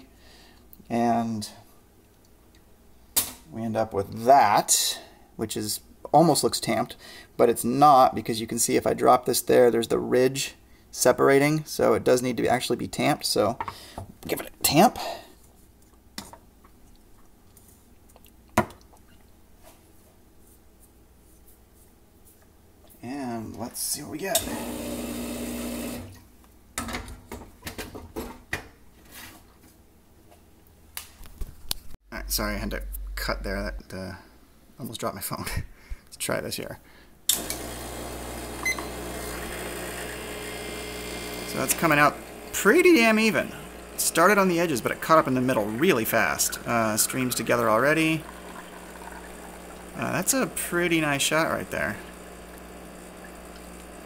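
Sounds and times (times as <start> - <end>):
espresso machine pump humming: 24.3 - 26.1, 37.3 - 54.0
espresso streaming into a glass: 24.4 - 26.1, 37.4 - 54.0.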